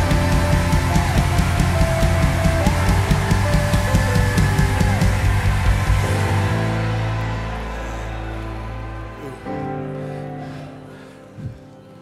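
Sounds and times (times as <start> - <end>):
drum kit beat: 0.0 - 7.8
rock band playing: 0.0 - 10.4.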